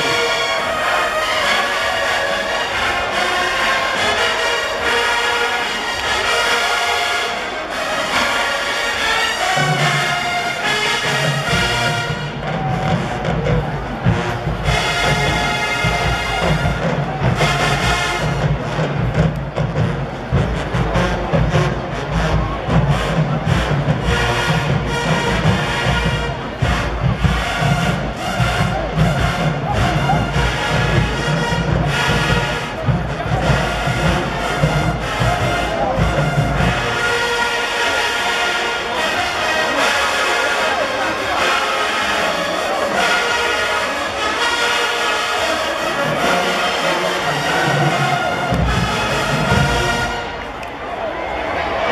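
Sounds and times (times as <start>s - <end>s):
marching band brass: 0.0s - 51.9s
steady drum beat: 9.6s - 38.0s, 45.7s - 50.5s.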